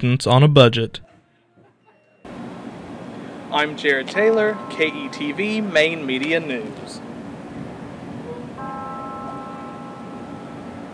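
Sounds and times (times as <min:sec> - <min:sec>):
constant outdoor hiss: 0:02.3 - 0:10.9
steady held chord tone: 0:02.3 - 0:10.9.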